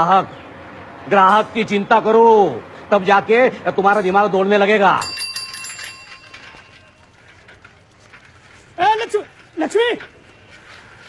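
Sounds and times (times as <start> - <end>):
small metal bell ringing: 5.0 - 7.0.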